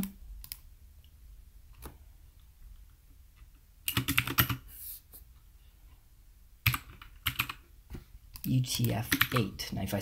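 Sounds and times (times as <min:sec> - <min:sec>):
computer keyboard typing: 0:03.8 - 0:04.7, 0:06.6 - 0:07.7, 0:08.3 - 0:09.6.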